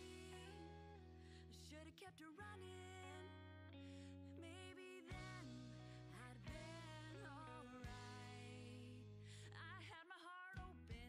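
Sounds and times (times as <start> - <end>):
quiet guitar music: 0.0 - 11.0.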